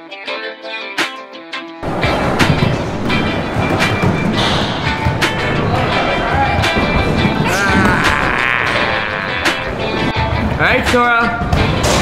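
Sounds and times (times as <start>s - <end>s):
music playing: 0.0s - 12.0s
skateboard wheels rolling on concrete: 1.8s - 12.0s.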